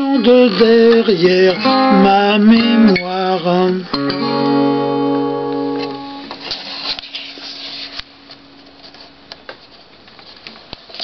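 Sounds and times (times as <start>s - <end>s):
acoustic guitar chord ringing: 0.0s - 6.4s
paper rustling: 6.3s - 11.0s.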